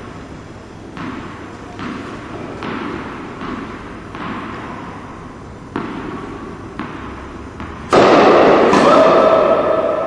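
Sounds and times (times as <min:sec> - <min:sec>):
tennis ball bouncing: 0:00.8 - 0:10.0.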